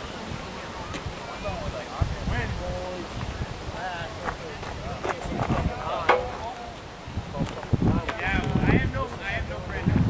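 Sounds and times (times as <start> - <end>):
people talking indistinctly: 0.8 - 10.0.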